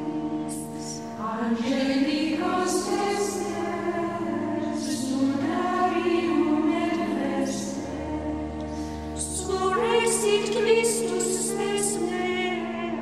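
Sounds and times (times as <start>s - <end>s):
choir singing held notes: 0.0s - 13.0s.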